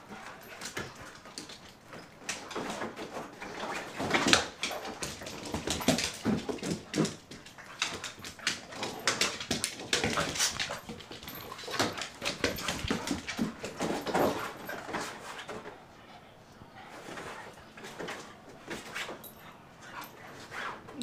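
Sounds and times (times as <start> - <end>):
paws clicking on hardwood floor: 0.0 - 15.9, 16.7 - 21.0.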